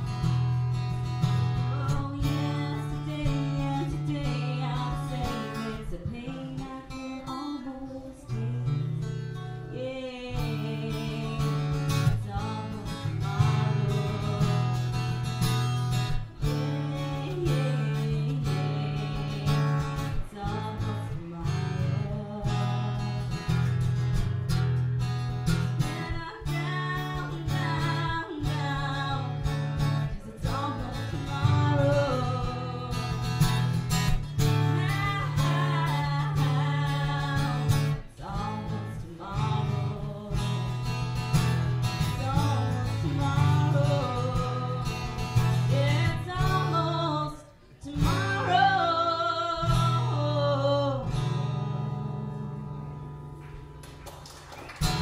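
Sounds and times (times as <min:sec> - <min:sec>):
woman singing: 0:00.0 - 0:24.0, 0:25.5 - 0:53.2
acoustic guitar strumming: 0:00.0 - 0:53.8.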